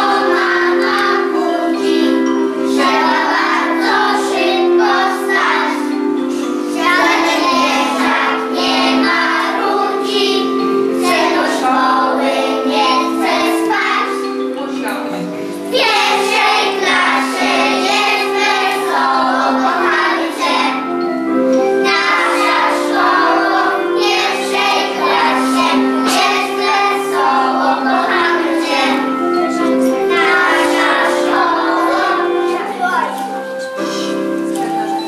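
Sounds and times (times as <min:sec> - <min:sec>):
children singing: 0:00.0 - 0:35.0
instrumental accompaniment: 0:00.0 - 0:35.0.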